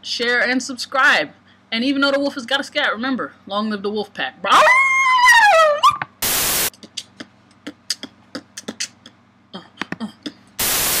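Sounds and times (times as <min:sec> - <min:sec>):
tv static hiss: 0:06.2 - 0:06.7, 0:10.6 - 0:11.0
beatboxing pops and clicks: 0:06.7 - 0:10.4.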